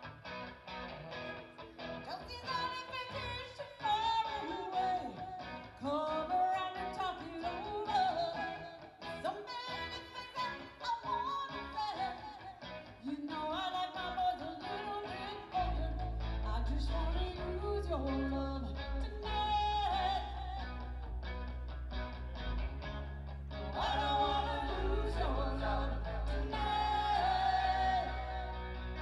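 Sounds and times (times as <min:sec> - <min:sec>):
electric guitar strumming: 0:00.0 - 0:29.0
person singing lead vocal: 0:02.0 - 0:21.2, 0:23.6 - 0:29.0.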